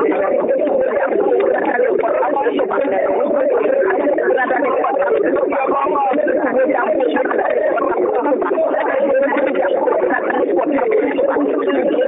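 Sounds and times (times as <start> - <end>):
muffled talking voices: 0.0 - 12.0.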